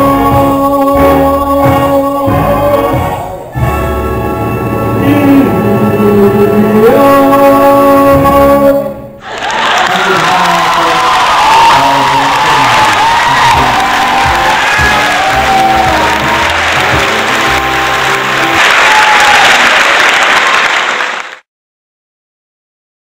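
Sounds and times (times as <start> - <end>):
audience applauding: 9.2 - 21.5
instrumental music: 13.4 - 18.6.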